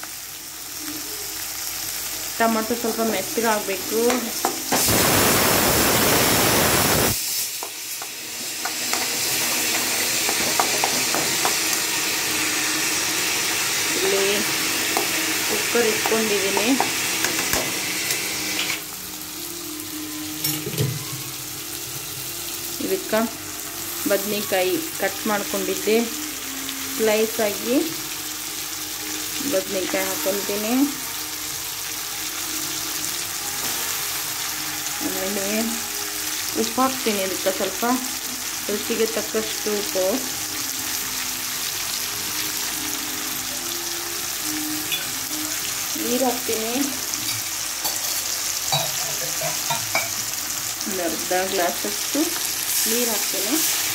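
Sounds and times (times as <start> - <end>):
food sizzling in a pan: 0.0 - 53.9.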